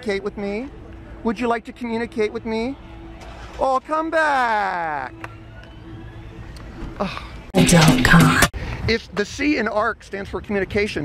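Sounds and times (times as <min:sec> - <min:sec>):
street traffic: 0:00.0 - 0:09.5.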